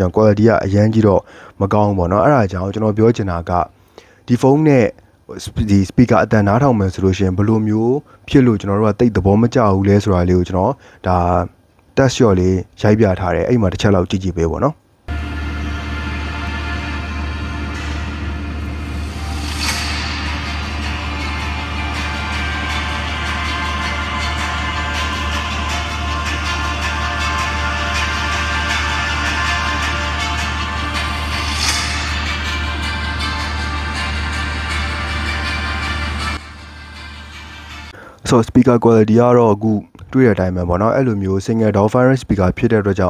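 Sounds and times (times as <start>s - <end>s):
music from phone loudspeaker: 15.1s - 38.0s.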